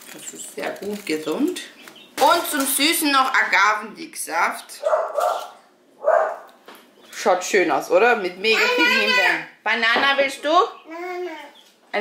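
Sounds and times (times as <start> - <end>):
dog barking: 4.8 - 6.5.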